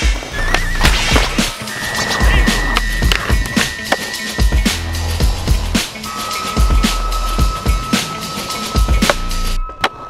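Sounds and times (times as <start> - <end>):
music with deep bass beat: 0.0 - 9.7
skateboard wheels rolling on concrete: 0.0 - 10.0.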